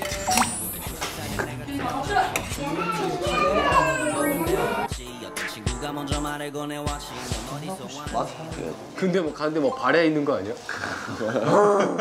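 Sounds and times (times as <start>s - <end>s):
background music with steady beat: 0.0s - 10.0s
toddlers chattering and squealing: 1.9s - 4.9s.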